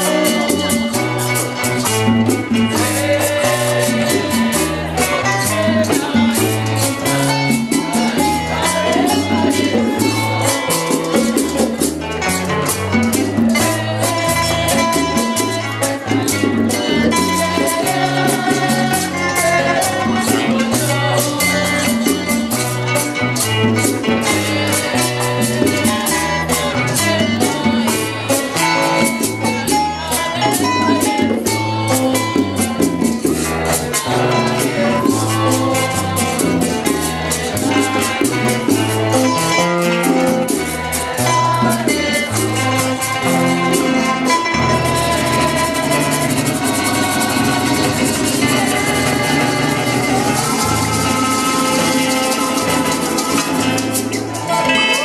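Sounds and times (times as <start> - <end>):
bass line: 0.0 - 55.0
frame drums and percussion: 0.0 - 55.0
strummed and plucked guitars: 0.0 - 55.0.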